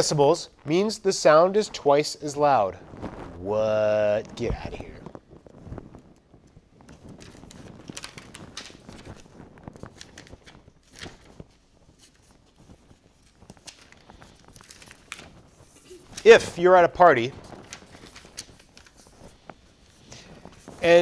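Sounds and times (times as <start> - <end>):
paper rustling: 2.8 - 21.0.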